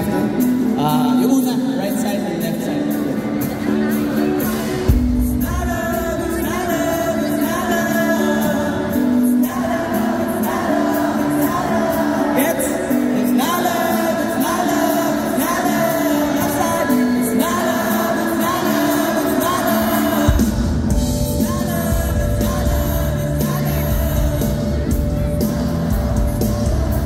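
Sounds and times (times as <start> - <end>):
live pop band playing: 0.0 - 27.0
audience singing along: 3.1 - 27.0.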